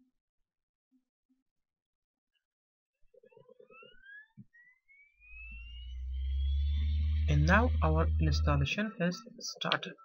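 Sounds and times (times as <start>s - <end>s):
disc drive whine rising: 3.2s - 10.0s
low hum: 3.6s - 10.0s.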